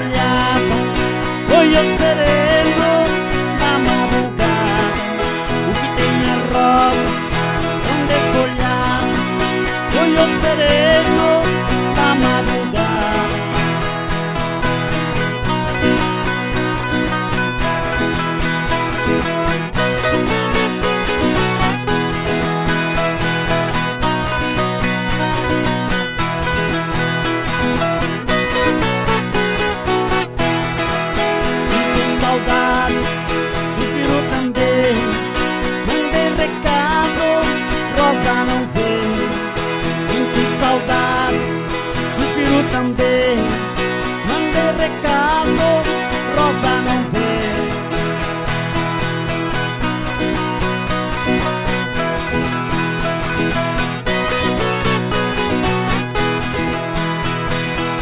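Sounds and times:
folk guitars strummed and picked: 0:00.0 - 0:58.0.

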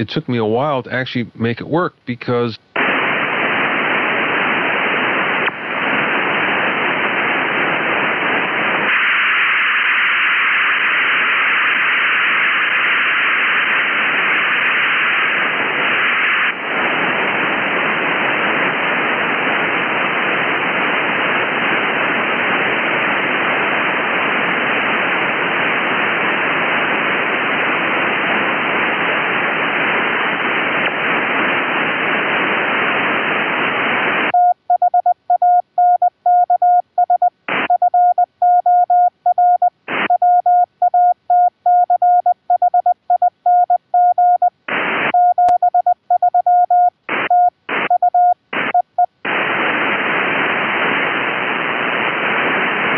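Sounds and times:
radio receiver hiss: 0:00.0 - 0:52.9
morse code tone: 0:34.4 - 0:49.1.

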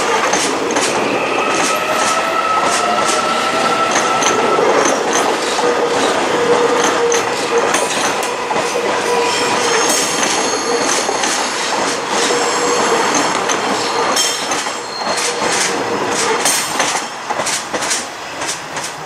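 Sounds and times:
wheels clacking over rail joints: 0:00.0 - 0:03.2, 0:03.8 - 0:19.0
train wheels squealing: 0:00.7 - 0:16.8.

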